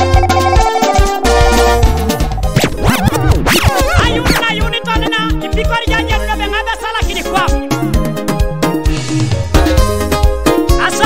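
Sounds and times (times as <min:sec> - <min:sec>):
gospel music mix: 0:00.0 - 0:11.0
dj scratching: 0:02.4 - 0:05.4.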